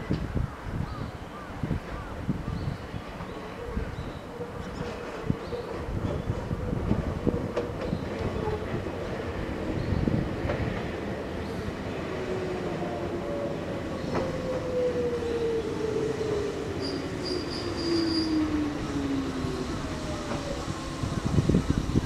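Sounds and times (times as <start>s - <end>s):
train rumble: 3.0s - 22.0s.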